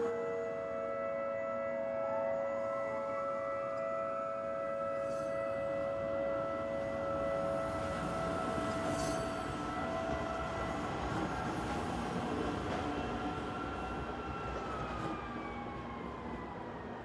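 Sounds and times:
train rumbling past: 4.5s - 17.0s.

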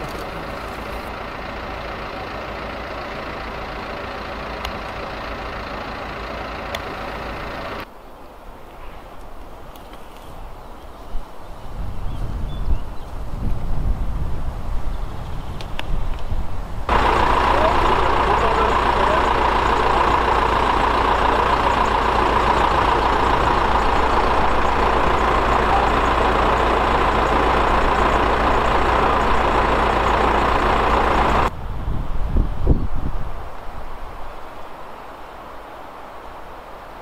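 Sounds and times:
engine running: 0.0s - 7.9s, 16.8s - 31.6s.

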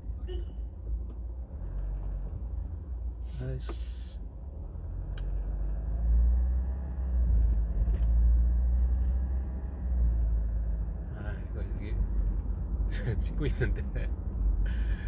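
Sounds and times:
car engine and tyres rumbling: 0.0s - 15.0s.

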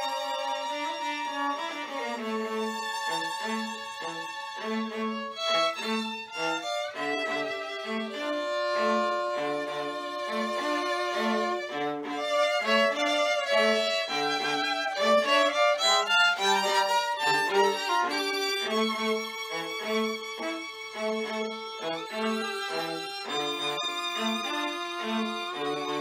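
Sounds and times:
string trio playing: 0.0s - 26.0s.

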